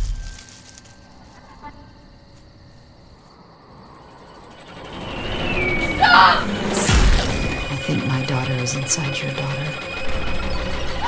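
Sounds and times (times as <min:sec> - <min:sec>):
dark ambience: 0:00.0 - 0:11.0
deep rumble: 0:04.9 - 0:11.0.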